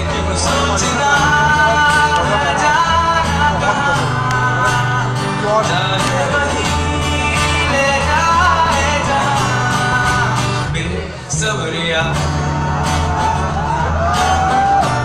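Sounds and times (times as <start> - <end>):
man singing: 0.0 - 13.4
electric bass: 0.0 - 15.0
strummed acoustic guitar: 0.0 - 15.0.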